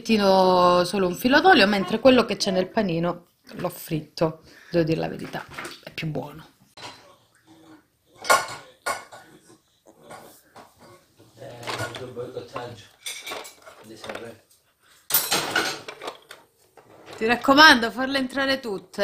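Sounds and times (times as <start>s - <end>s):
plates and cutlery clattering: 6.8s - 14.4s, 15.1s - 17.7s.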